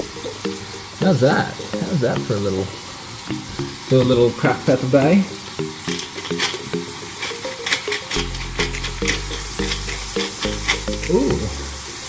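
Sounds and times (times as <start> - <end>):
background music: 0.0 - 12.0
chicken sizzling in a frying pan: 0.0 - 12.0
pepper grinder crunching: 5.9 - 11.6.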